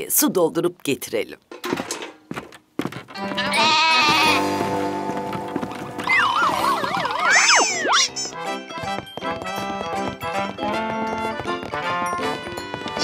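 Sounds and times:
goat bleating: 3.2s - 4.5s
cartoon background music: 3.2s - 13.0s
swooping whistle sound effects: 6.0s - 8.3s.

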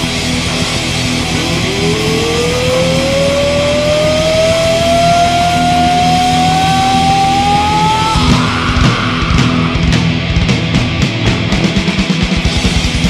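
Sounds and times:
distorted electric guitar note rising: 0.0s - 12.2s
live band and hall noise: 7.0s - 13.0s.

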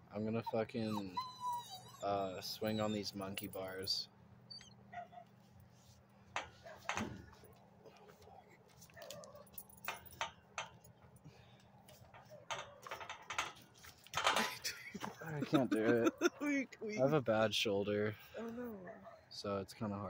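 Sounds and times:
man laughing: 14.4s - 16.5s.

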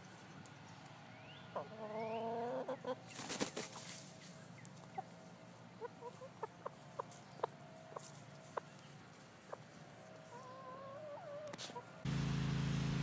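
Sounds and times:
bird calling: 5.8s - 11.9s.

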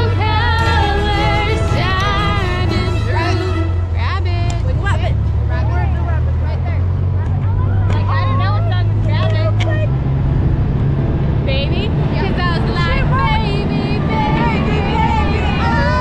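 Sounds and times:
vehicle engine droning: 0.0s - 16.0s.

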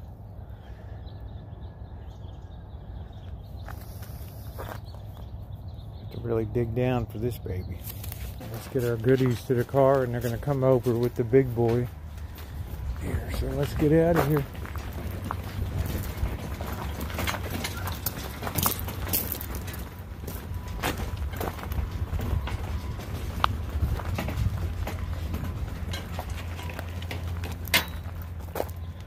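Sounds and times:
cart rolling over gravel: 2.8s - 29.0s
footsteps on gravel: 3.1s - 5.6s, 7.0s - 29.0s
clicks and rattles: 13.6s - 28.8s.

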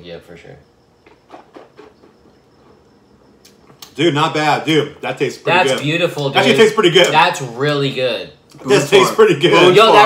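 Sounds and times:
people sipping and swallowing: 1.0s - 3.9s.

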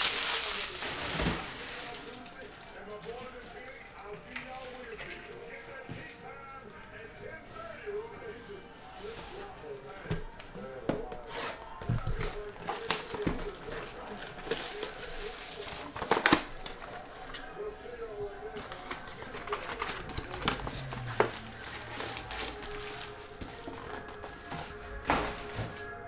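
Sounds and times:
loud crackle of foil: 0.0s - 5.7s, 12.0s - 17.5s, 18.4s - 25.9s
foil packs crinkling and rustling: 0.0s - 7.9s, 9.1s - 26.0s.

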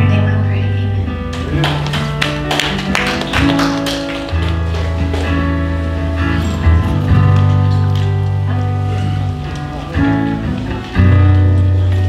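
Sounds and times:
held bass notes: 0.0s - 12.0s
sustained keyboard chords: 0.0s - 12.0s.

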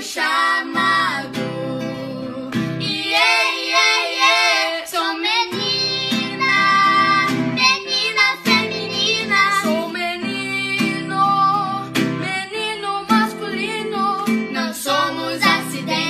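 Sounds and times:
acoustic guitar: 0.0s - 16.0s
children singing: 0.0s - 16.0s.

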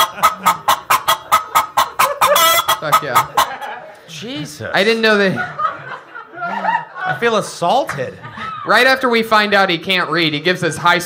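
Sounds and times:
loud squawk: 0.0s - 3.7s
chicken-like clucking: 0.0s - 4.0s.

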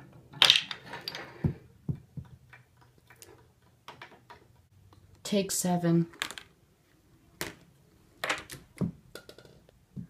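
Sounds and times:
ball striking plastic and wood: 7.4s - 10.0s.

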